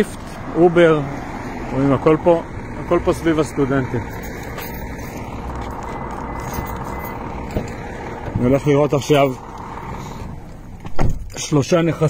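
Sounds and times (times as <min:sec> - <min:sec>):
car driving road noise: 0:00.0 - 0:12.0.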